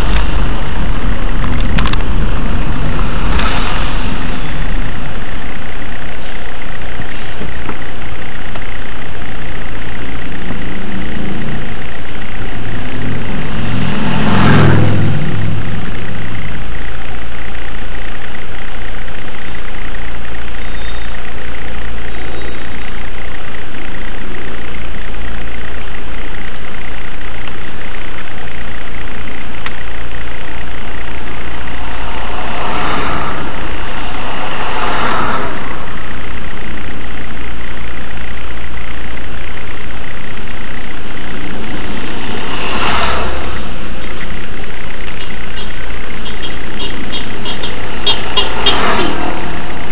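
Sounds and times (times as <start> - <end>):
car engine idling: 0.0 - 49.9.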